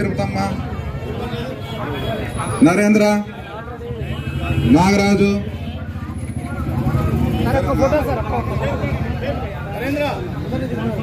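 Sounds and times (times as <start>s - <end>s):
faint crowd babble: 0.0s - 11.0s.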